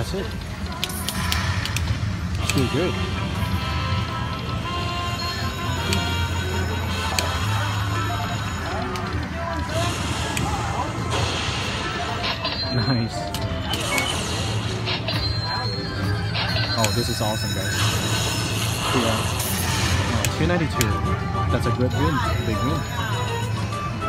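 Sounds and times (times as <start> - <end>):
casino chatter: 0.0 - 24.0
other slot machines: 0.0 - 24.0
slot machine electronic music: 0.0 - 24.0.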